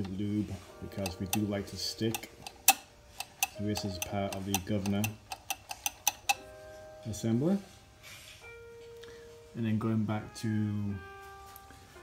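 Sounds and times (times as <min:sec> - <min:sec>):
sharp metallic clicks: 0:01.0 - 0:06.4.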